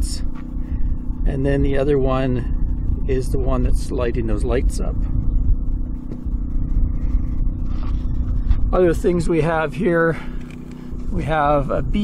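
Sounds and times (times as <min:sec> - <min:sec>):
generator engine running: 0:00.0 - 0:12.0.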